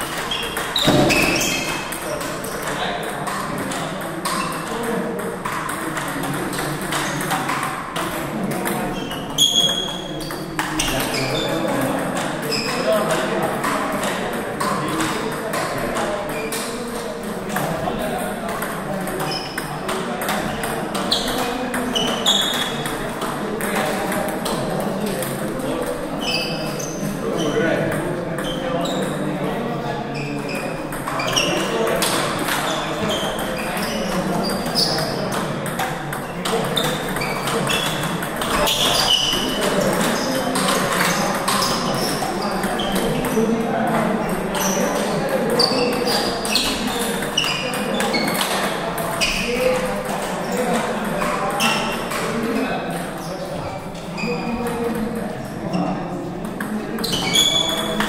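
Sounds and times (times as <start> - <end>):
table tennis balls clicking: 0.0 - 29.4, 30.4 - 53.2, 53.9 - 58.0
murmur of voices: 0.0 - 58.0.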